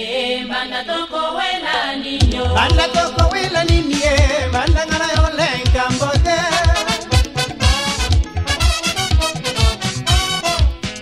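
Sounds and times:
voices singing a chant-like melody: 0.0 - 7.1.

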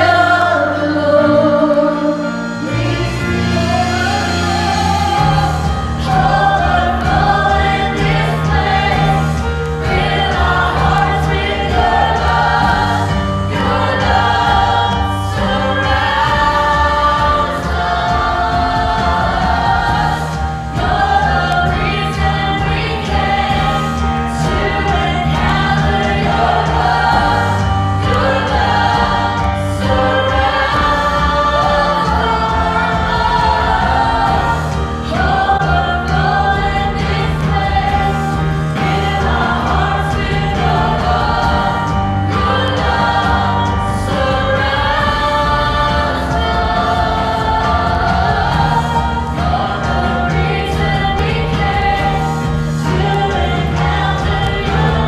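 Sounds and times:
keyboard: 0.0 - 55.0
singers singing into microphones: 0.0 - 55.0
drums: 2.3 - 55.0.

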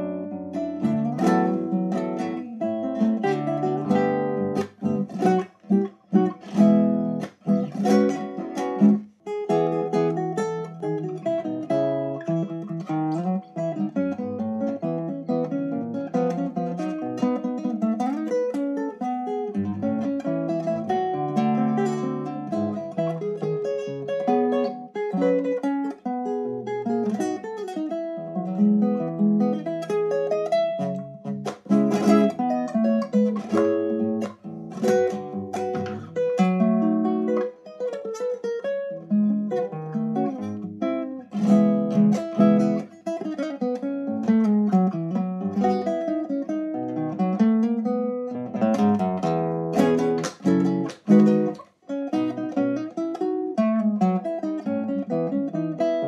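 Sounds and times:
classical guitar playing: 0.0 - 56.0.

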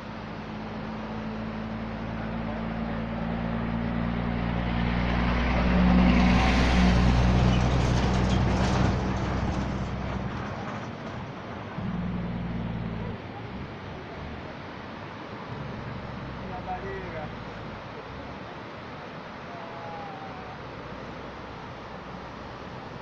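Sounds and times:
heavy truck driving past: 0.6 - 18.4.

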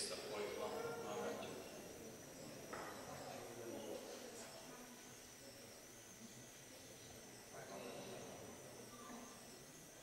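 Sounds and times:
faint murmur: 0.0 - 10.0
thin high whine: 0.0 - 10.0.

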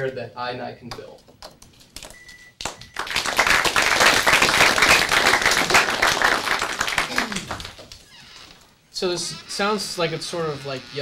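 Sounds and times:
audience applauding: 2.6 - 8.0.

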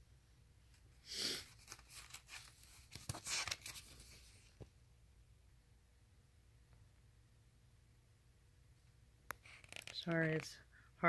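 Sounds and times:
paper pages rustling: 1.4 - 4.7, 9.4 - 10.5
paper crinkles and small clicks: 1.5 - 4.7, 9.3 - 10.5.

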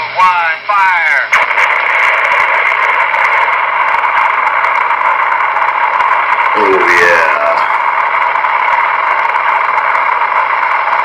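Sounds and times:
loud static hiss: 0.0 - 11.0.

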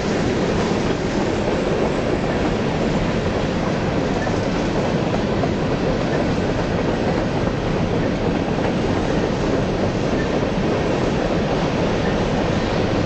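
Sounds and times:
train wheels rolling on rails: 0.0 - 13.0.

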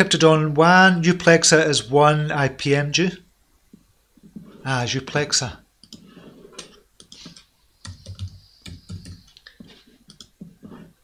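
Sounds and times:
mouse clicks: 5.8 - 9.4
typing on computer keyboard: 7.0 - 9.2.

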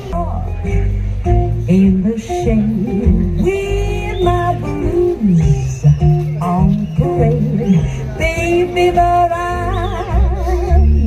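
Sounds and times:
deep steady bass: 0.0 - 11.0.

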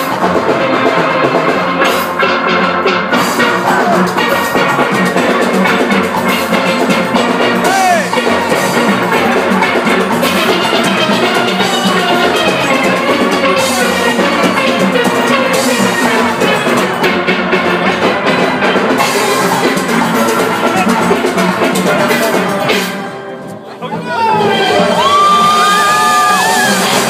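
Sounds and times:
percussion beat: 0.0 - 23.2, 23.9 - 27.0
steel orchestra playing: 0.0 - 27.0.

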